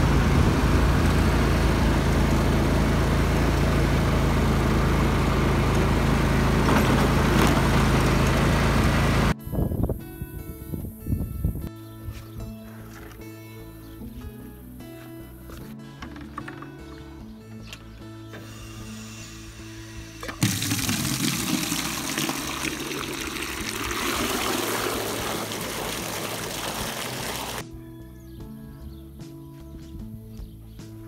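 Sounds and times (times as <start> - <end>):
background music: 9.3 - 31.0
hose water pouring into bucket: 20.2 - 27.6.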